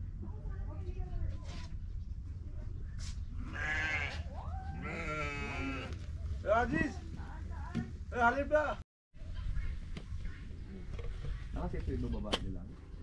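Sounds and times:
livestock bleating: 3.4 - 4.2, 4.8 - 6.0.

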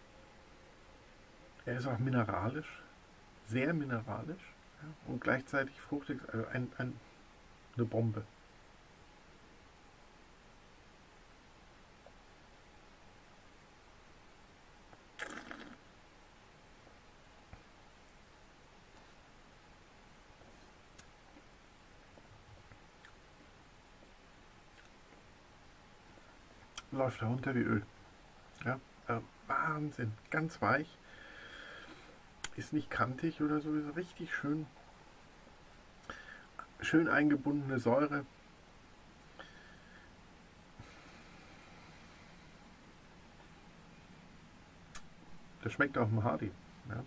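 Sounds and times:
man speaking: 1.6 - 2.9, 3.5 - 7.0, 26.8 - 27.9, 28.6 - 31.0, 32.5 - 34.7, 36.6 - 38.3, 45.6 - 47.0.

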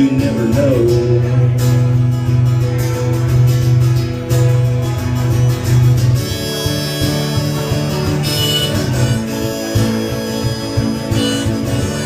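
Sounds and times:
acoustic guitar strumming: 0.0 - 12.0
harmonica: 5.8 - 12.0.

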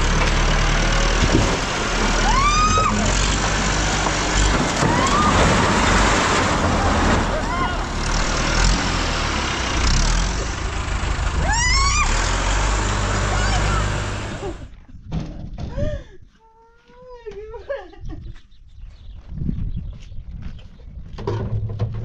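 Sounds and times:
tractor engine running: 0.0 - 14.8
high wailing cries: 2.2 - 3.2, 4.8 - 5.8, 7.3 - 8.0, 11.4 - 12.4, 13.2 - 14.6.

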